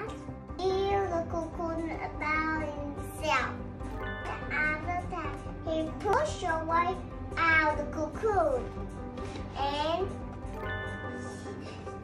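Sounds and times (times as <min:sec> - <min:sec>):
girl speaking: 0:00.0 - 0:03.6, 0:04.2 - 0:08.7, 0:09.5 - 0:10.2
quiet background music: 0:00.0 - 0:12.0.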